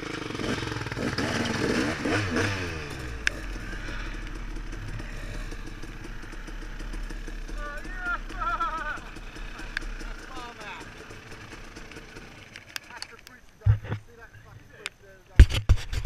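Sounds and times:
motorcycle engine at low revs: 0:00.0 - 0:14.0
riders shouting: 0:07.3 - 0:11.4.

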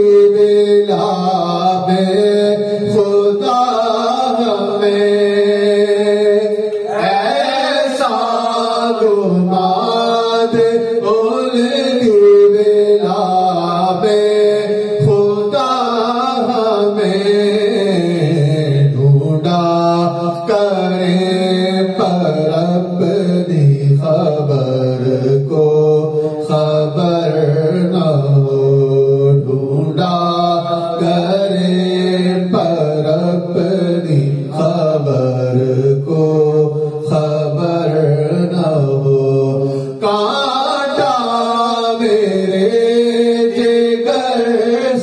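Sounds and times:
man chanting into a microphone: 0:00.0 - 0:45.0
men's voices chanting: 0:04.0 - 0:11.4.

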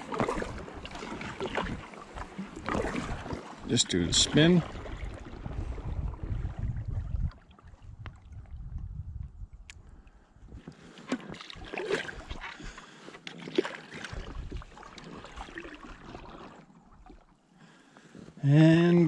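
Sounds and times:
paddle blades splashing: 0:00.0 - 0:08.6, 0:10.4 - 0:19.0.

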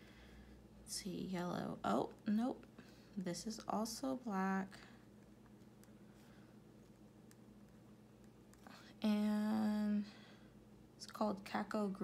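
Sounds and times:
soft breath: 0:00.0 - 0:00.7
faint steady hum: 0:00.0 - 0:12.0.

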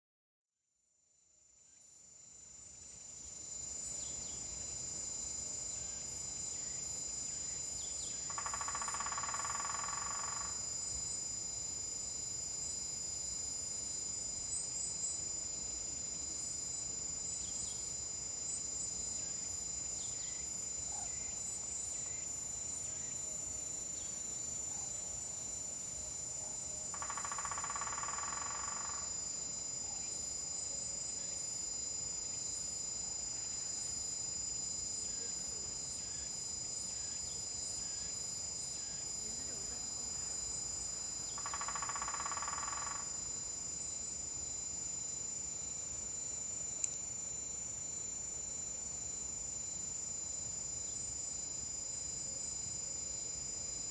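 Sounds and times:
buzzing insect trill: 0:01.6 - 0:53.9
crickets shrilling: 0:03.4 - 0:53.9.

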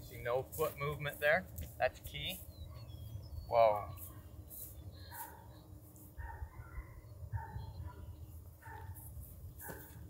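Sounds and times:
wind rumbling on microphone: 0:06.1 - 0:10.0.

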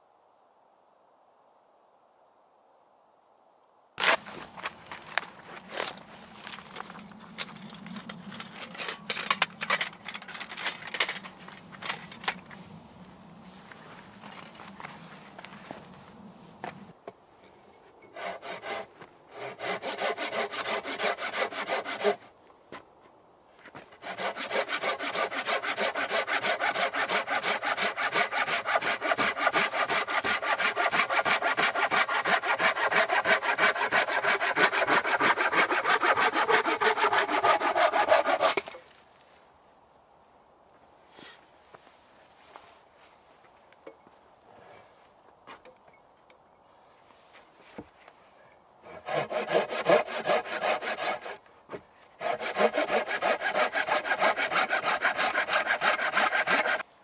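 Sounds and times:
hand saw cutting log: 0:04.0 - 0:12.4, 0:18.1 - 0:22.3, 0:23.8 - 0:38.9, 0:48.8 - 0:51.4, 0:52.2 - 0:56.9.

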